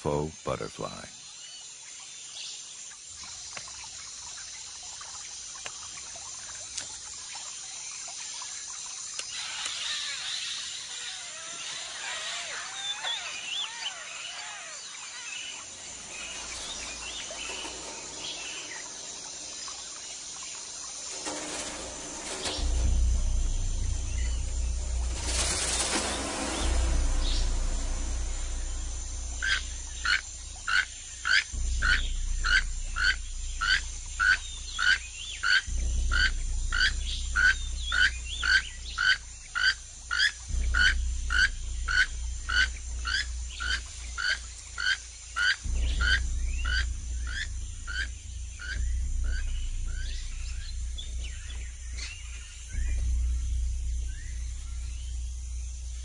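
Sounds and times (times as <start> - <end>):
low hum: 12.6 - 56.0.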